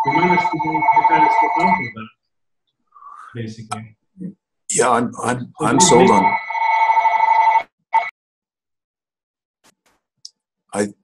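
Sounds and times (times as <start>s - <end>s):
electronic ringing tone: 0.0s - 2.0s, 5.6s - 8.1s
person speaking: 0.0s - 2.1s, 3.2s - 6.4s.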